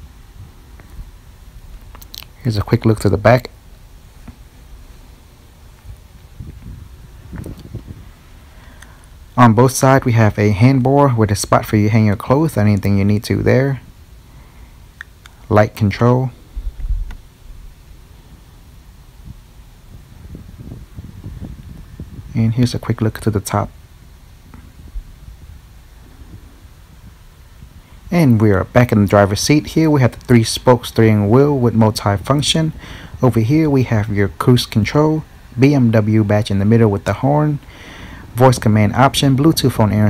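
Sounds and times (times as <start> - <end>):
camera handling rumble: 5.8 - 8.0.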